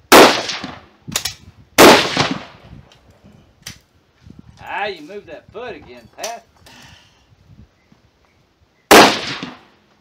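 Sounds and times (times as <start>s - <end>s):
rifle shot: 0.1s - 2.6s, 8.9s - 9.7s.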